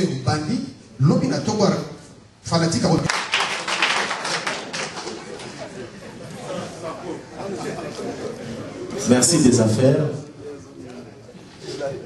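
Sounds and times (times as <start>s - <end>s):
audience clapping: 3.1s - 5.7s.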